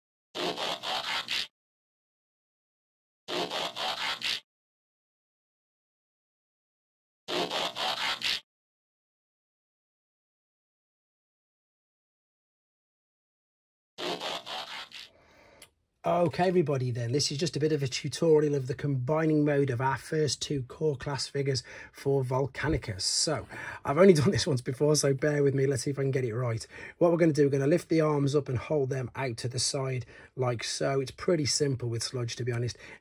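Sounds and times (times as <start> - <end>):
scratchy whoosh: 0.4 - 1.5, 3.3 - 4.4, 7.3 - 8.4, 14.0 - 15.1.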